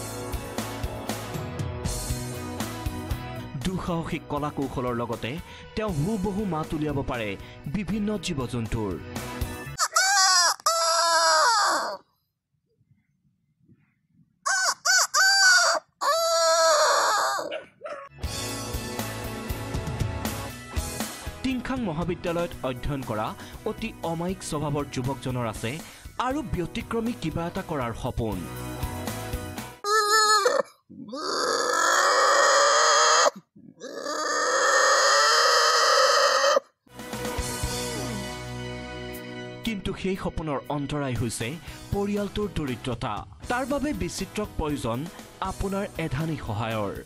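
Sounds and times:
man imitating rooster crow: 9.8s - 12.0s, 14.5s - 17.6s, 29.8s - 36.7s
boy mimicking an animal call: 9.9s - 12.0s, 16.2s - 17.6s, 29.9s - 36.7s.

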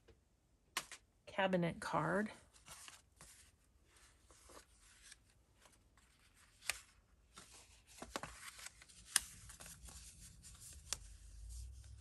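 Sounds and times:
paper rustling and sliding: 2.5s - 12.0s.

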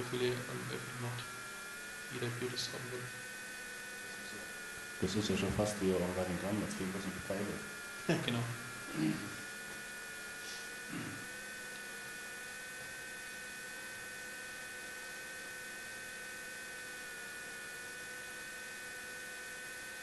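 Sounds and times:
electrical hum: 0.0s - 20.0s
thin high whine: 0.0s - 20.0s.

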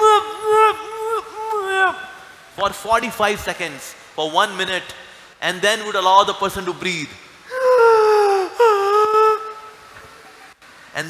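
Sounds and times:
man wailing: 0.0s - 2.3s, 7.5s - 9.8s.

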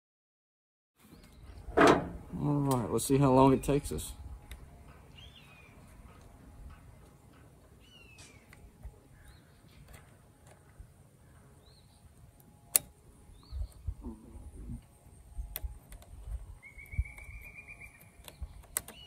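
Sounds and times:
birds calling: 1.0s - 19.0s.

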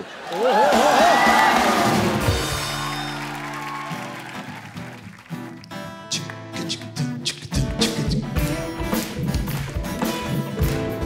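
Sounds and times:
audience cheering and applause: 0.0s - 7.0s, 8.6s - 11.0s
man singing with vibrato: 6.1s - 8.4s.

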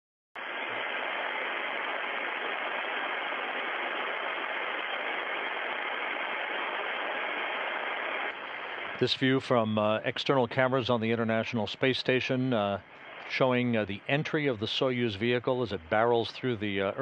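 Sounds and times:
steady background hiss: 0.4s - 17.0s.

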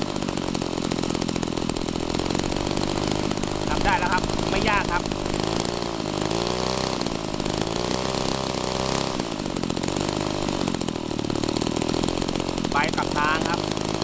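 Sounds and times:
small engine running: 0.0s - 14.0s.

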